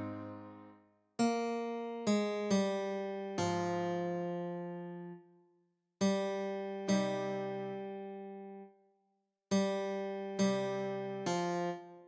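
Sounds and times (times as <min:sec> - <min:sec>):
acoustic guitar plucked notes: 0:00.0 - 0:00.7.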